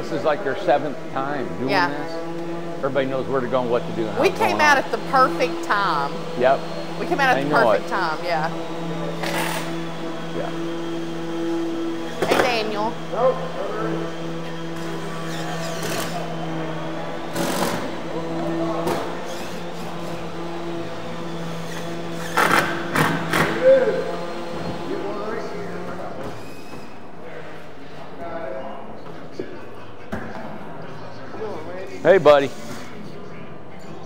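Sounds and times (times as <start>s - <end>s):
voices talking: 0.0s - 11.4s, 12.0s - 21.2s.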